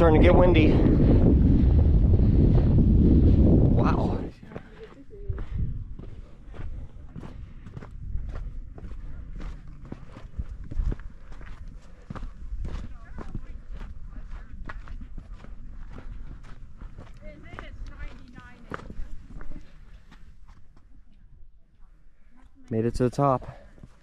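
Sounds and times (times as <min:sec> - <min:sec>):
footsteps on rocky trail: 0:00.9 - 0:22.6, 0:23.2 - 0:24.0.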